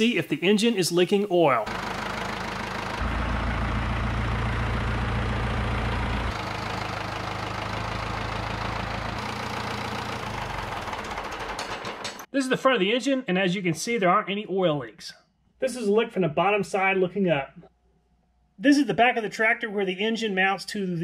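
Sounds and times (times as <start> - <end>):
tractor engine running: 1.6 - 12.3.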